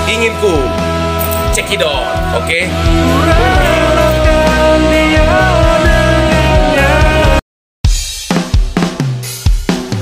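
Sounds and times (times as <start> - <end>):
held bass notes: 0.0 - 7.4
drum kit sharp hits: 7.9 - 10.0.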